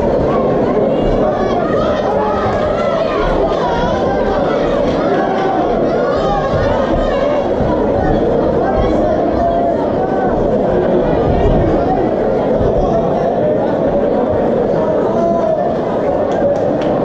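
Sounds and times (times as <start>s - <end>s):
crowd shouting and talking: 0.0s - 17.0s.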